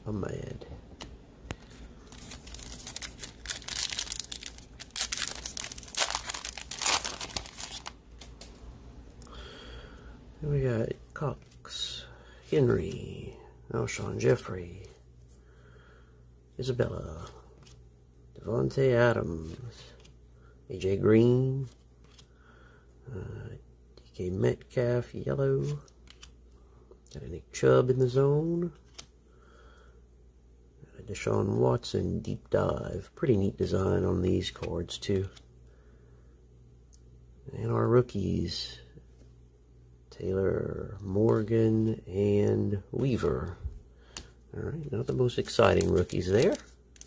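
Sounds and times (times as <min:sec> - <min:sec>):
plastic wrapper tearing and crinkling: 0:02.1 - 0:08.5, 0:45.5 - 0:47.0
cards sliding and flipping: 0:22.0 - 0:22.3.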